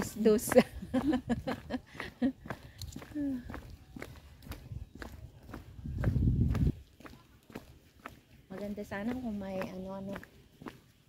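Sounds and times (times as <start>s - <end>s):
footsteps on asphalt: 0.0s - 11.0s.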